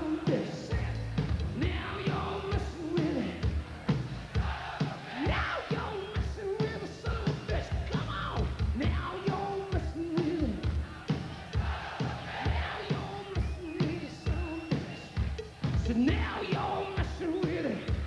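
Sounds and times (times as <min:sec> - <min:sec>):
crowd singing and shouting: 0:00.0 - 0:18.0
live hard rock band: 0:00.0 - 0:18.0
steady drum beat: 0:00.0 - 0:18.0.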